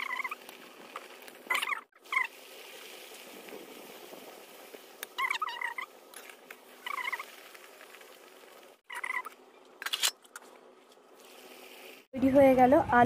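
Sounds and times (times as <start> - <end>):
oil sizzling in wok: 0.0 - 8.8, 11.2 - 12.1.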